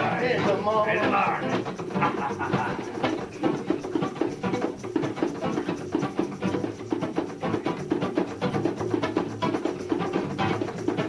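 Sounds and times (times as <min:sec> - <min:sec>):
acoustic guitars strumming: 0:00.0 - 0:11.0.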